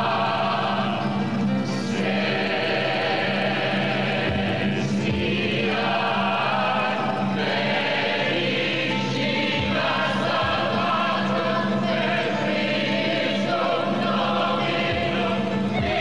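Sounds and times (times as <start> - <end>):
choir singing: 0.0 - 16.0.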